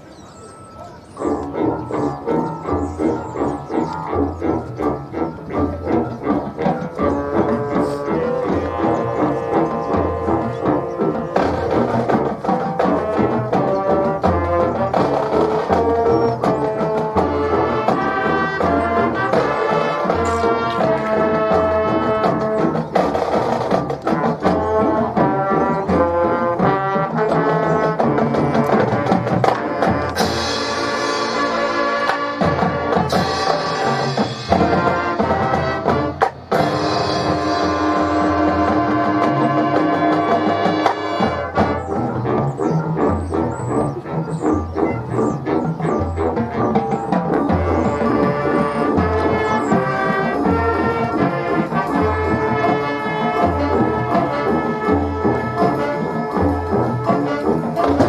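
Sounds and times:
marching band playing: 0:00.0 - 0:58.0.

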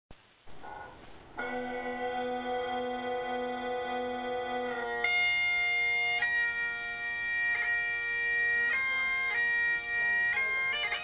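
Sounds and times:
bagpipes playing: 0:01.4 - 0:11.0.

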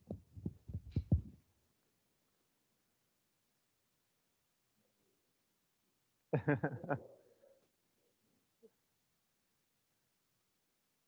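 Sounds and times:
microphone bumped thumps: 0:00.0 - 0:01.4.

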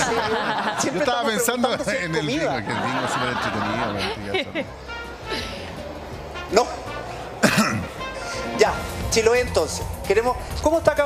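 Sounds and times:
man coughing: 0:07.4 - 0:08.0.

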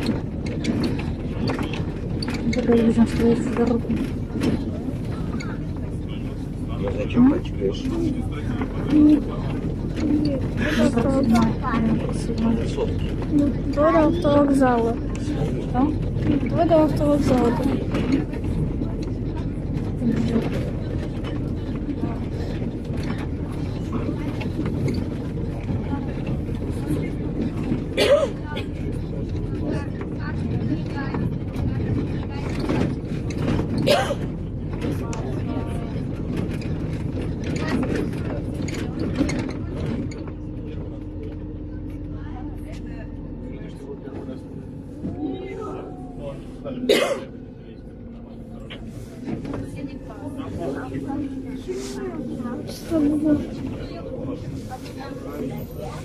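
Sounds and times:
bus body knocks and rattles: 0:00.0 - 0:07.1, 0:07.8 - 0:42.1
bus engine and road rumble: 0:00.0 - 0:56.0.

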